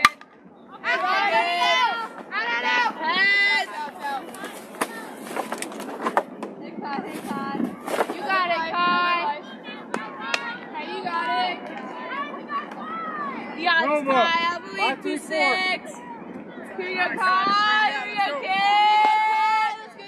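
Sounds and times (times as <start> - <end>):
young voices shouting and chanting: 0.6 - 5.5, 6.6 - 20.0.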